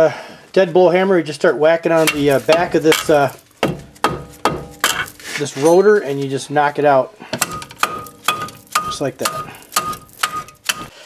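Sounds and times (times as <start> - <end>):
hammer striking brake rotor: 2.1 - 5.2, 7.4 - 11.0.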